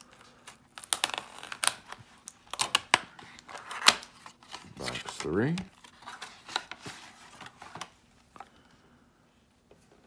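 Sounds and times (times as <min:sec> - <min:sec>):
paper and card rustling: 0:00.0 - 0:08.6.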